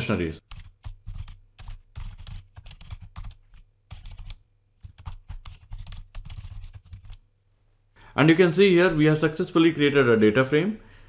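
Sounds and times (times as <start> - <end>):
computer keyboard typing: 0.4 - 7.2.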